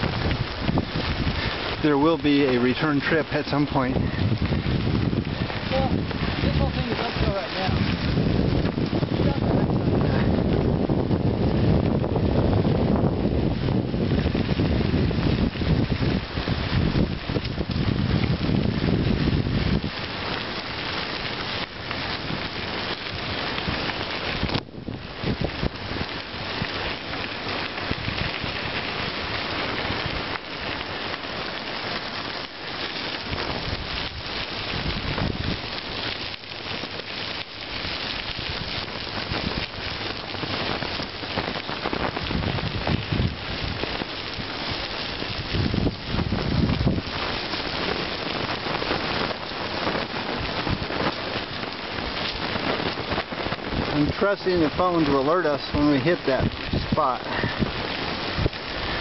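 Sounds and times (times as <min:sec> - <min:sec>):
bicycle tyres crunching on gravel: 0:00.0 - 0:59.0
wind rumble on microphone: 0:00.0 - 0:59.0.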